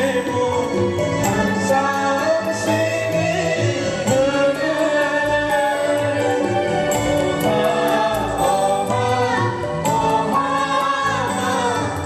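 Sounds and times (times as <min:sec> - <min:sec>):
instrumental backing: 0:00.0 - 0:12.0
choir singing: 0:01.2 - 0:12.0.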